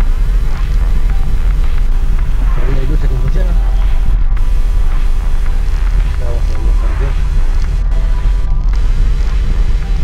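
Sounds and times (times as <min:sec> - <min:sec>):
car wind and road noise: 0:00.0 - 0:10.0
music playing: 0:00.0 - 0:10.0.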